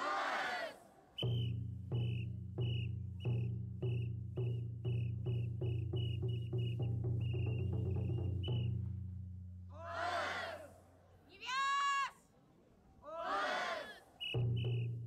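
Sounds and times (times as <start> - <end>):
group shouting in unison: 0.0 - 0.8, 9.8 - 10.8, 13.0 - 14.1
high voice held cry: 11.4 - 12.2.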